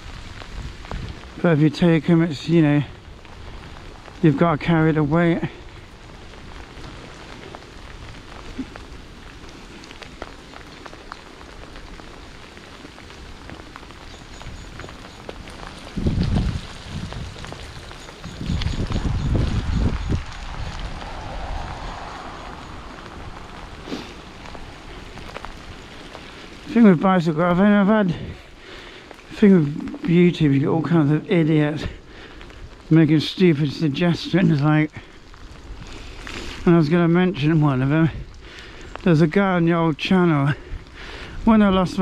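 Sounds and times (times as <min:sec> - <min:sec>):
low rumbling: 0:00.0 - 0:39.2
bicycle tyres hissing on wet path: 0:00.0 - 0:42.0
falling rain: 0:00.0 - 0:42.0.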